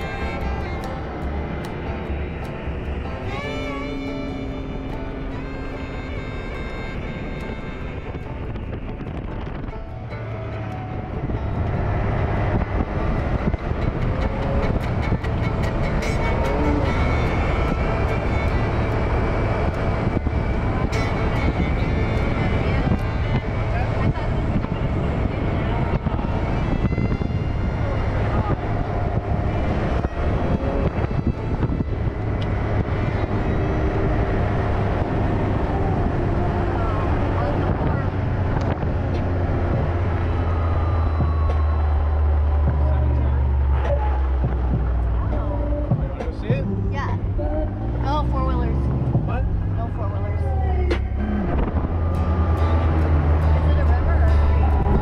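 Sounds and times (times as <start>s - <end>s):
off-road vehicle engine drone: 0.0s - 55.0s.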